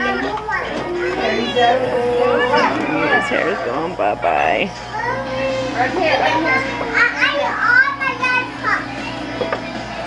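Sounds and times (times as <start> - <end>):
children chattering and calling: 0.0 - 10.0
electric hair clippers humming: 0.0 - 10.0.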